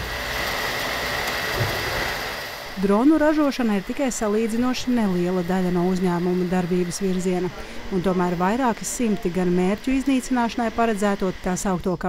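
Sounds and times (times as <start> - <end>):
high whine: 0.0 - 12.0
printer fans and motors whirring: 0.0 - 12.0.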